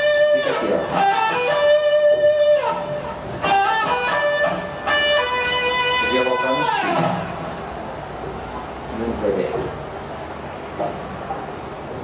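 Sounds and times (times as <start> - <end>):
clean electric guitar melody: 0.0 - 7.6.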